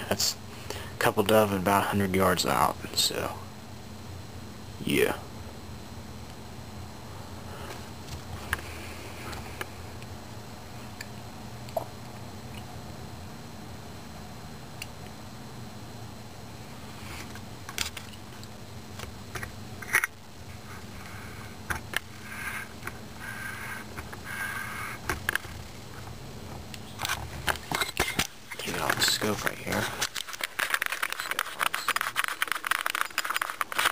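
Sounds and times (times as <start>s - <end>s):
steady low hum: 0.0s - 33.9s
clicks and scrapes of handling: 26.8s - 33.9s.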